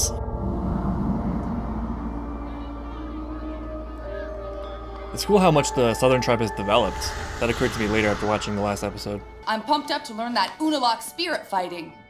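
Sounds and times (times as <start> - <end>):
low drone under held notes: 0.0 - 9.5
soft background score: 0.0 - 12.0.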